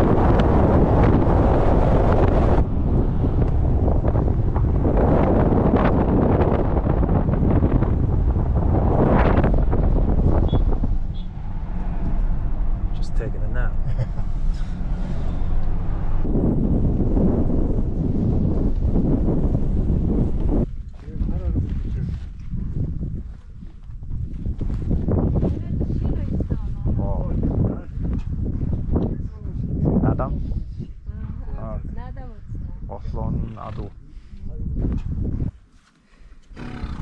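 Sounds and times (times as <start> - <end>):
truck engine: 0.0 - 20.6, 36.5 - 37.0
wind rushing over microphone: 0.0 - 35.6, 36.5 - 37.0
tyre noise: 36.3 - 37.0.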